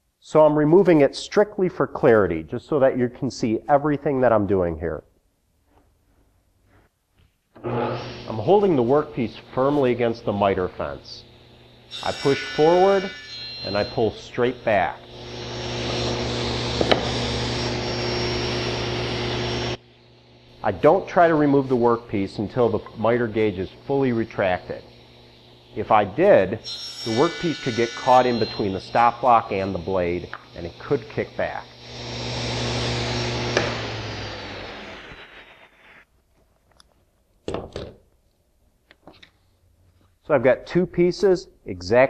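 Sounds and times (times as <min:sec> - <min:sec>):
table saw cutting wood: 0:07.6 - 0:36.1.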